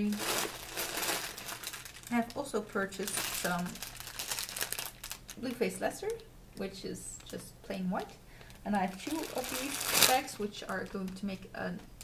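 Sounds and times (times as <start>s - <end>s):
plastic bag crinkling: 0.0s - 6.3s, 7.2s - 11.5s.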